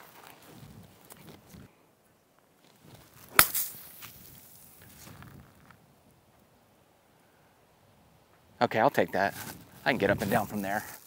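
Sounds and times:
golf club striking ball: 3.3s - 3.7s.

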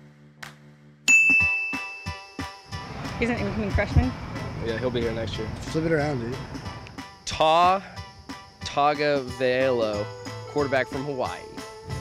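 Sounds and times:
background music with steady beat: 0.0s - 12.0s
bell-like ding: 1.1s - 2.4s.

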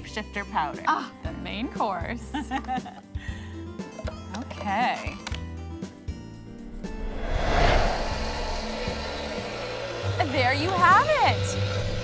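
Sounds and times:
background music: 0.0s - 12.0s
blender running: 8.6s - 12.0s.

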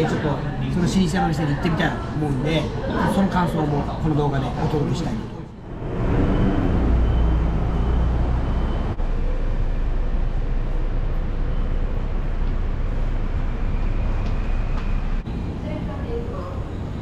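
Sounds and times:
street traffic noise: 0.0s - 17.0s
heavy vehicle engine rumble: 5.5s - 17.0s.

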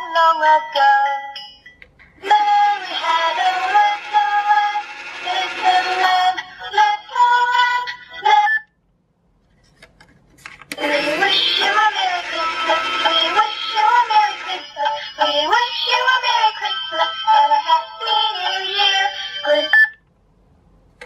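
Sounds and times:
synthesised sung tune from speaker: 2.2s - 8.7s, 10.8s - 20.0s.

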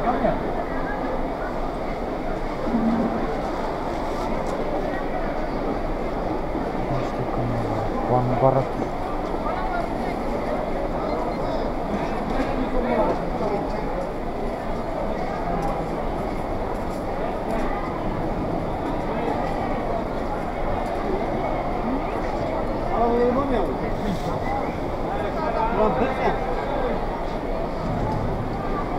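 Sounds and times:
busy market hubbub: 0.0s - 28.9s.

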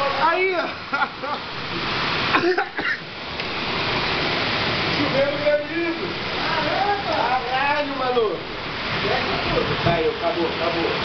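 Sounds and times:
hail and heavy rain pounding: 0.0s - 11.0s.

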